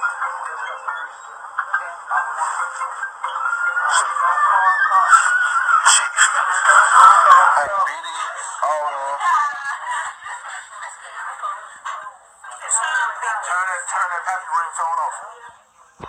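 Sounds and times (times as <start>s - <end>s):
music: 0.0s - 16.0s
people talking over each other: 0.0s - 16.0s.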